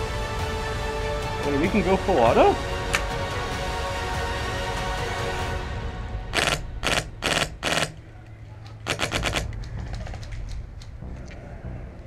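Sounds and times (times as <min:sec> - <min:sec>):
airsoft rifle firing bursts: 0:08.9 - 0:09.5.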